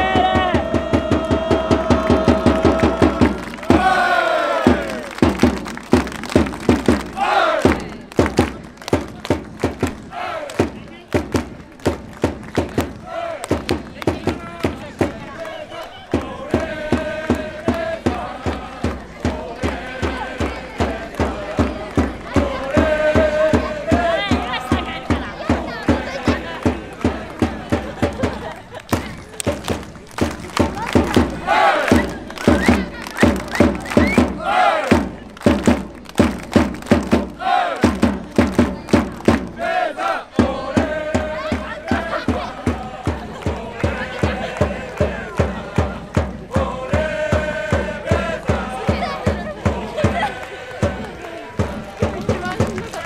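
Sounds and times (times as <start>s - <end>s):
crowd voices: 0.0s - 53.0s
music with steady beat: 16.1s - 39.6s, 40.3s - 53.0s.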